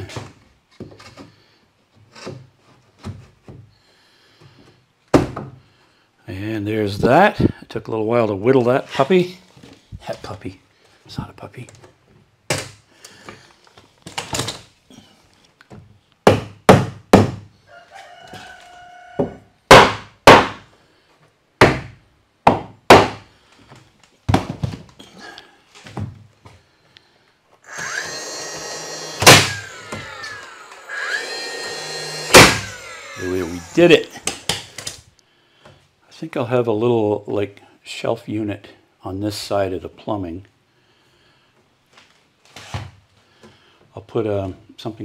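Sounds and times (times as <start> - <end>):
sharp wooden knocks: 16.2 - 17.5, 19.2 - 20.6, 21.6 - 23.3, 29.2 - 30.1, 32.3 - 33.0
wood rubbing and creaking: 27.7 - 35.0.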